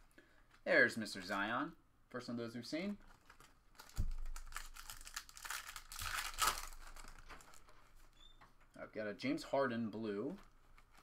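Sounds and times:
foil wrapper tearing and crinkling: 3.0s - 7.6s.

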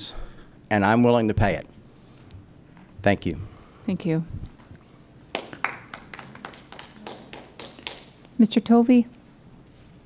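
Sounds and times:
people clapping: 5.3s - 8.3s.

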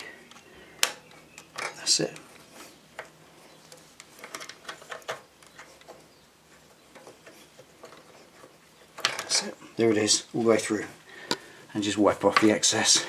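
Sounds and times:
metal parts clicking and scraping: 0.0s - 9.6s.

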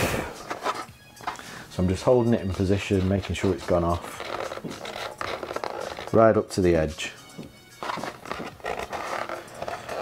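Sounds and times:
plastic rustling and scraping: 0.2s - 6.4s, 7.8s - 10.0s.

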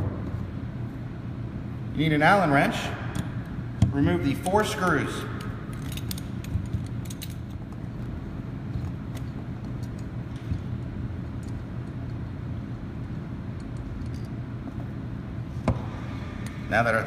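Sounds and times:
low background hum: 0.0s - 17.0s.

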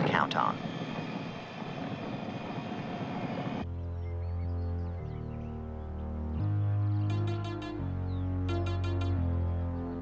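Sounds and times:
synthesizer music with low bass: 3.6s - 10.0s.

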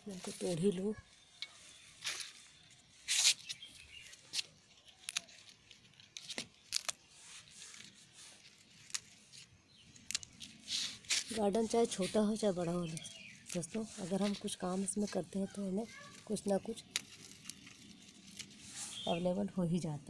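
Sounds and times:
plants rustling and snapping: 1.4s - 19.2s.

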